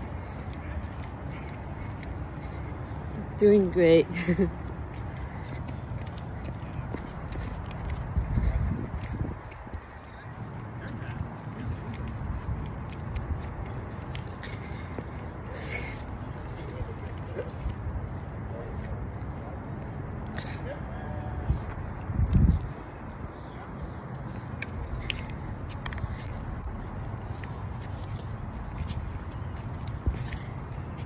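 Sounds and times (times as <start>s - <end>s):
wind buffeting microphone: 5.9s - 13.8s, 21.4s - 23.3s.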